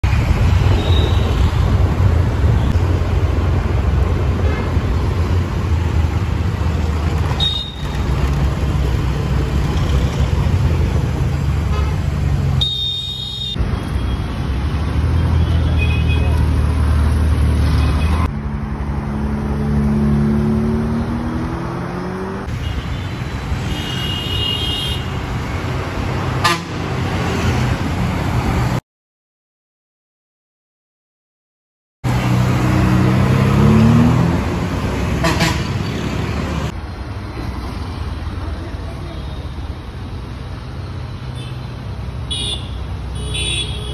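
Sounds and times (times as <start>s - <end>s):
street traffic rumble: 0.0s - 28.8s, 32.0s - 43.9s
vehicle horns honking: 7.4s - 8.0s, 12.6s - 14.2s, 22.5s - 25.2s, 26.4s - 26.8s, 35.2s - 35.9s, 42.3s - 43.9s.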